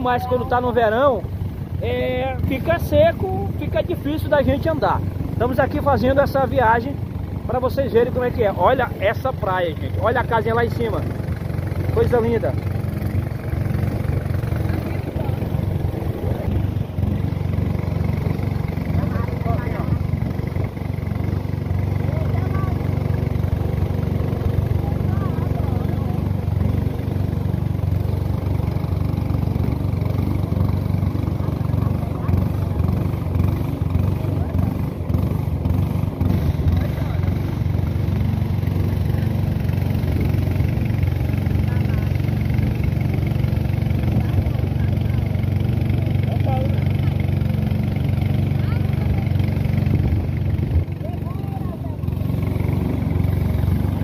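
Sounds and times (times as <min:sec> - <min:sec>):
boat motor droning: 0:00.0 - 0:54.0.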